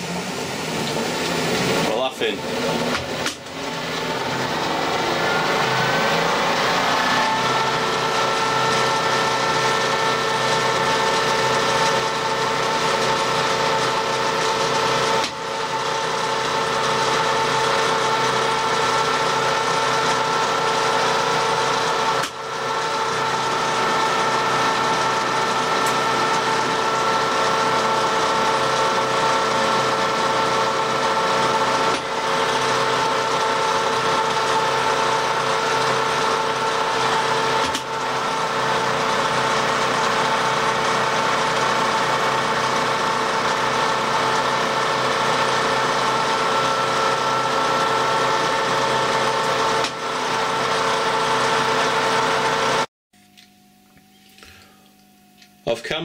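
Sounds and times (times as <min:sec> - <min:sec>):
lathe cutting metal: 0:00.0 - 0:52.9
lathe machine whine: 0:00.0 - 0:52.9.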